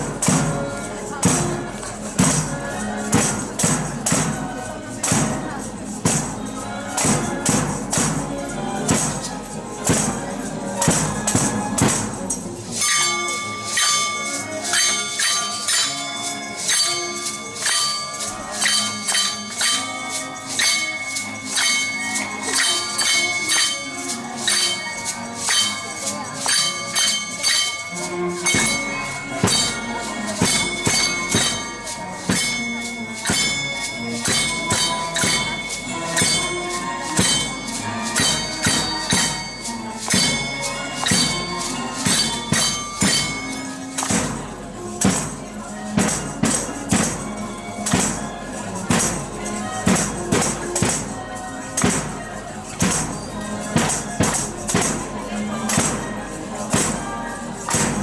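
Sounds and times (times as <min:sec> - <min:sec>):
hand percussion band playing: 0:00.0 - 0:58.0
maracas shaking: 0:00.0 - 0:58.0
wooden clappers and bells: 0:00.0 - 0:58.0.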